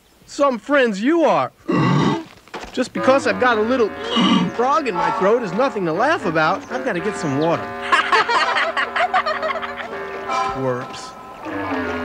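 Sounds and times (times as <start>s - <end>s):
held music chord: 2.8s - 12.0s.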